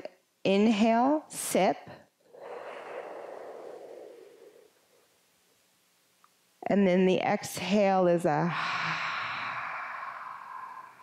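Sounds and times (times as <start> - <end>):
breathy inhale through mouth: 2.3 - 4.9, 8.5 - 11.0.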